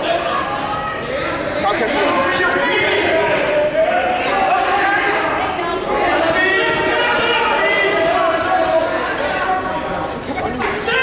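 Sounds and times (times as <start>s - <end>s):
voices shouting in echoing gym: 0.0s - 11.0s.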